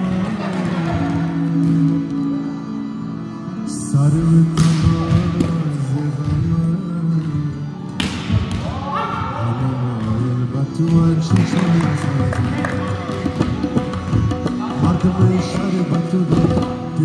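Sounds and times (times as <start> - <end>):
background song with gliding notes: 0.0 - 17.0.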